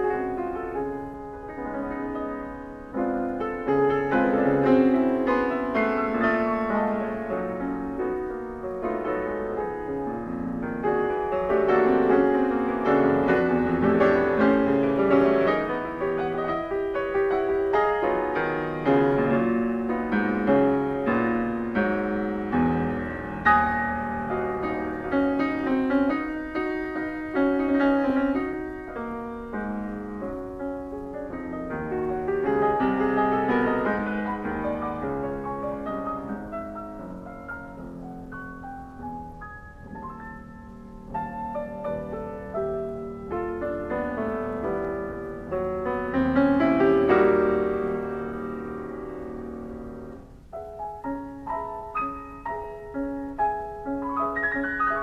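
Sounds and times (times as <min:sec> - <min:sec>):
piano notes ringing: 0:00.0 - 0:55.0.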